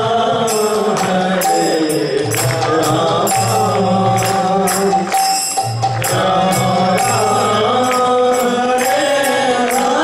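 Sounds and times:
hand drum beat: 2.2 - 10.0.

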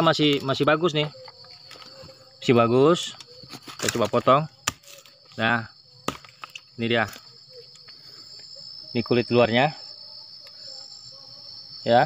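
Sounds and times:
insect drone: 0.0 - 12.0.

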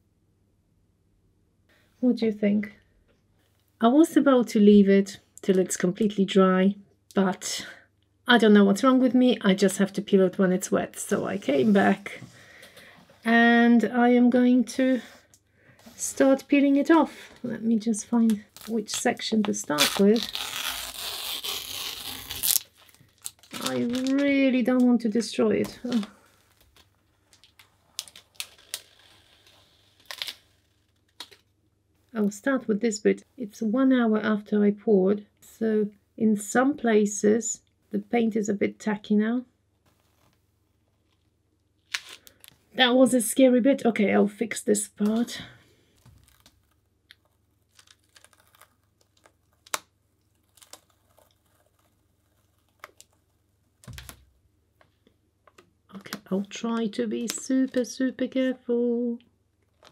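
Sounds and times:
stencil peeling off paint: 46.0 - 54.3.

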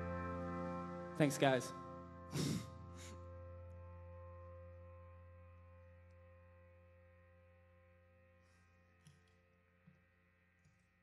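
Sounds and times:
held amplified guitar tones: 0.0 - 7.0.

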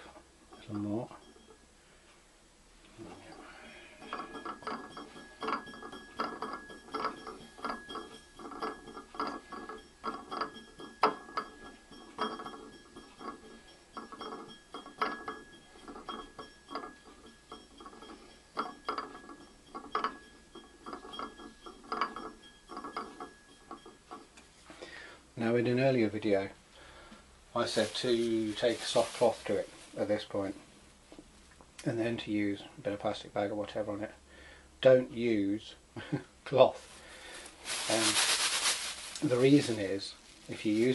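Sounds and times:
faint steady high tone: 0.0 - 2.1
banding wheel bearing clicking: 4.0 - 24.5.

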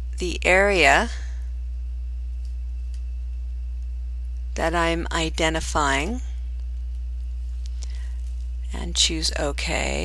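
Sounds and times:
faint high whine: 0.0 - 10.0
low electrical hum: 0.0 - 10.0.

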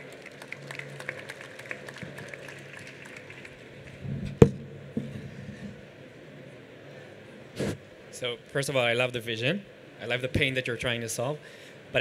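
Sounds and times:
hall background noise: 0.0 - 12.0.

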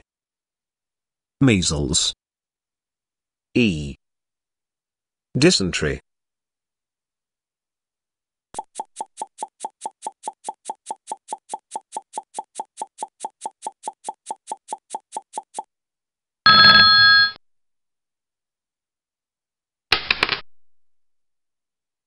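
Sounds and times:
timer ticking: 8.6 - 15.7.

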